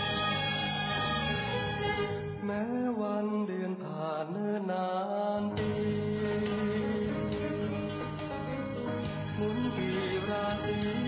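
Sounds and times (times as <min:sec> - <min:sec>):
guitar-backed band: 0:00.0 - 0:02.5, 0:05.5 - 0:11.0
man singing long bending notes: 0:09.4 - 0:11.0.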